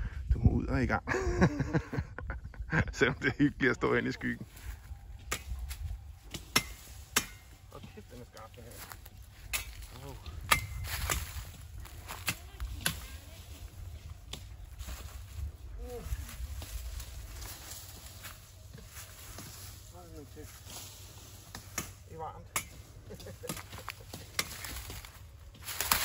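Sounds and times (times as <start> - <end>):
wind on microphone: 0.0 - 0.9, 10.2 - 17.4
dry stalks snapping: 8.7 - 15.2, 20.7 - 26.0.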